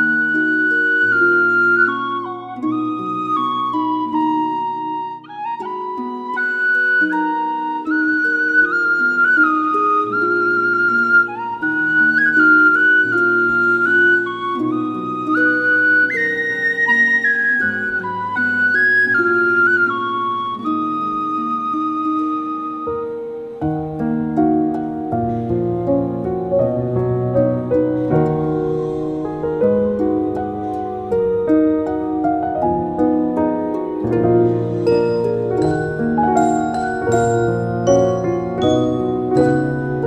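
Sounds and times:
flute-like melody: 0.0s - 40.0s.

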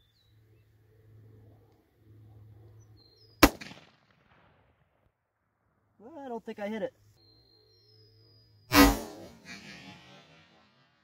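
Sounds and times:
rifle shot with echo: 3.4s - 4.8s, 8.7s - 10.7s.

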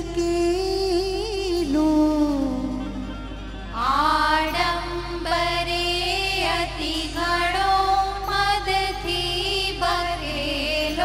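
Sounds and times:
instrumental accompaniment: 0.0s - 11.0s
women singing folk song: 0.0s - 11.0s.

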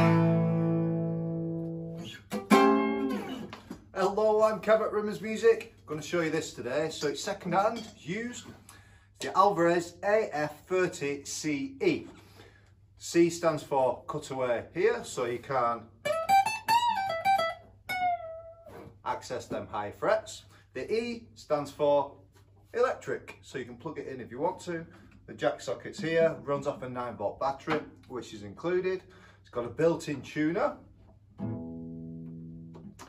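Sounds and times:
acoustic guitar string plucked: 0.0s - 3.7s, 31.3s - 33.0s.

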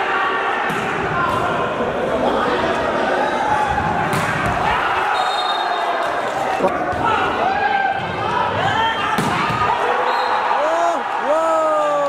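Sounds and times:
crowd voices and shouting: 0.0s - 12.0s.

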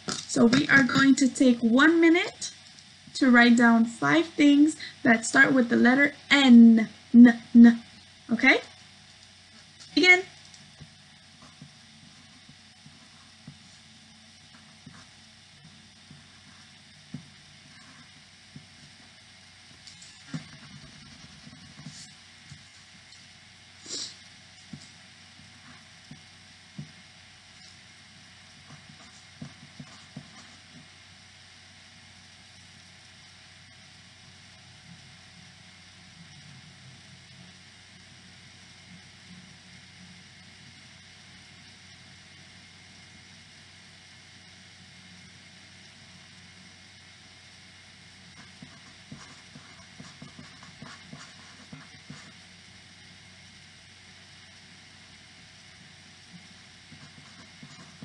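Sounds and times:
electrical hum and hiss: 0.0s - 58.0s.

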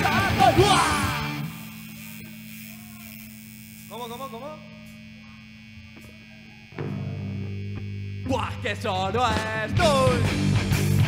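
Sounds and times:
person shouting: 0.0s - 1.2s
amplifier mains hum: 0.0s - 11.0s.

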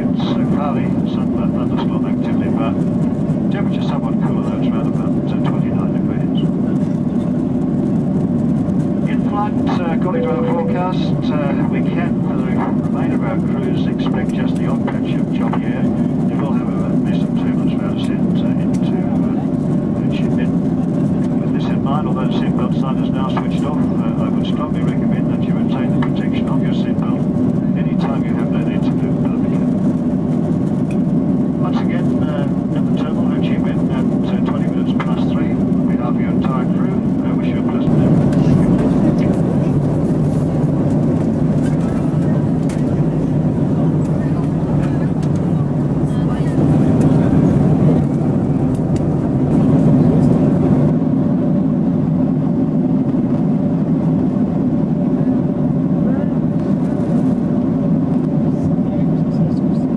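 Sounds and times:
airliner cabin engine hum: 0.0s - 59.9s
indistinct voices: 9.1s - 20.5s.

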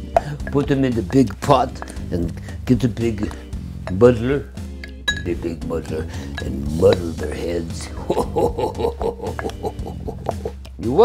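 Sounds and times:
background music: 0.0s - 11.0s
man laughing: 7.8s - 10.6s.

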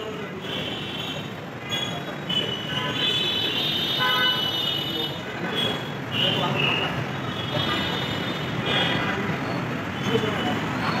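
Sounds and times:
city traffic noise: 0.0s - 11.0s.

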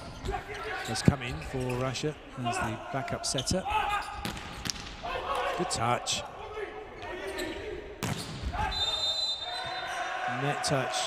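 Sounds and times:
referee's whistle: 8.6s - 10.0s.

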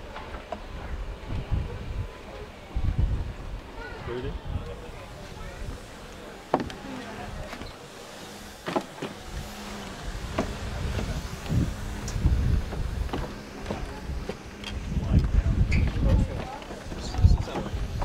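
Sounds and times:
footsteps on wooden boards: 6.5s - 6.8s, 10.3s - 11.6s, 12.6s - 18.0s.

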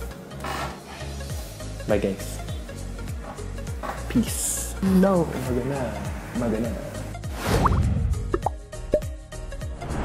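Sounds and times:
rising plop sound effects: 7.5s - 9.1s.

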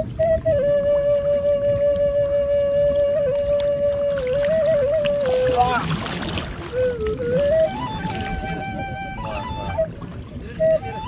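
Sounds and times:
sea water rushing: 0.0s - 11.0s
slow melody of held notes: 0.0s - 11.0s
wind on microphone: 0.0s - 11.0s.

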